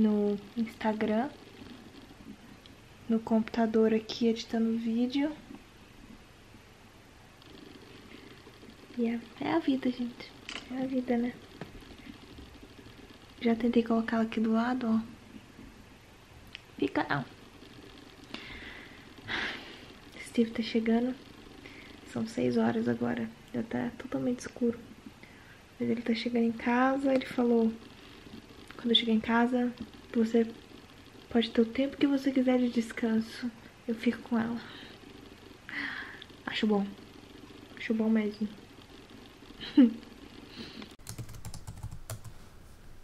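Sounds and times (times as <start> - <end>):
keystroke clicks: 41.0 - 42.8.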